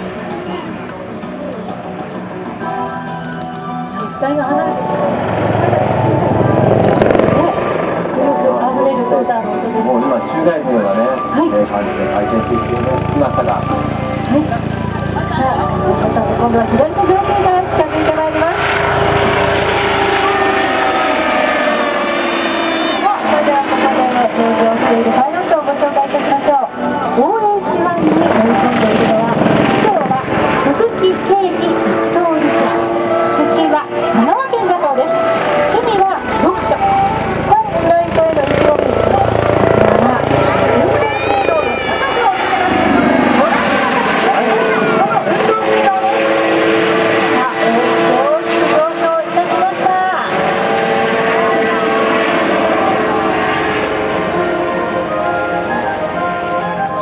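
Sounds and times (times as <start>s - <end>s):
helicopter flying overhead: 0.0s - 57.0s
people chattering: 0.0s - 57.0s.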